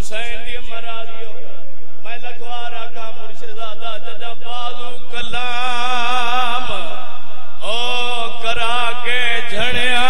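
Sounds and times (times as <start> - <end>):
man chanting through microphone: 0.0 - 10.0.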